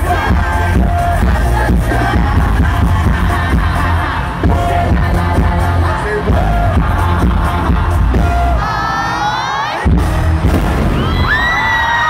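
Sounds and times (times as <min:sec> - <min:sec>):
loud live pop music: 0:00.0 - 0:12.0
pyrotechnics bang: 0:10.4 - 0:11.4.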